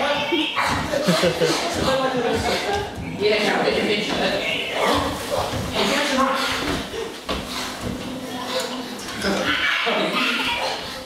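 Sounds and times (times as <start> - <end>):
voices making wordless sounds: 0.0 - 11.0.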